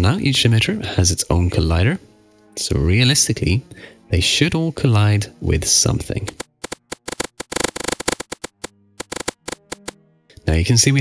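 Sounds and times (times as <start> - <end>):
sharp pops and crackles: 6.2 - 10.0.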